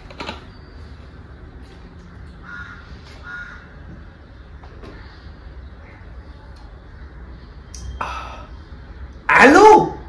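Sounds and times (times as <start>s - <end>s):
steady low hum: 0.0s - 10.0s
bird calling: 2.4s - 3.8s.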